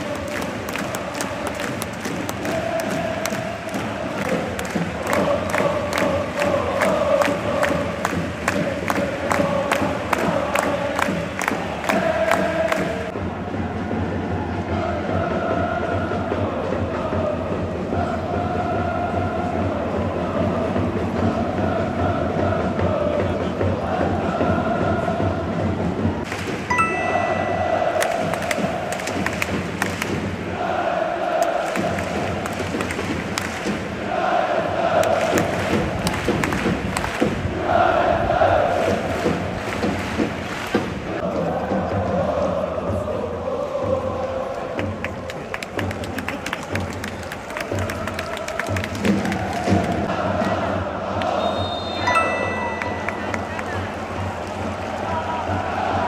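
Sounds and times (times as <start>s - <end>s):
football crowd chanting: 0.0s - 56.0s
sharp rhythmic hits: 26.5s - 30.8s
whistle: 51.3s - 52.6s.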